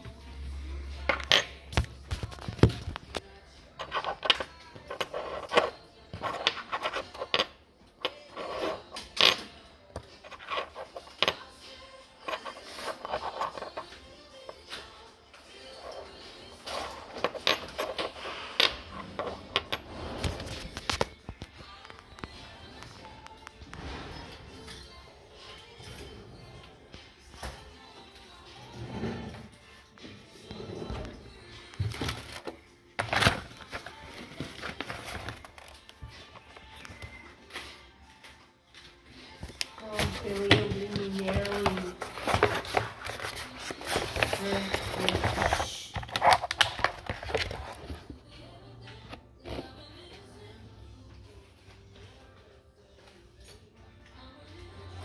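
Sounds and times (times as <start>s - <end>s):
background music: 0.0s - 55.0s
metal blades and plastic packaging handled: 40.0s - 47.6s.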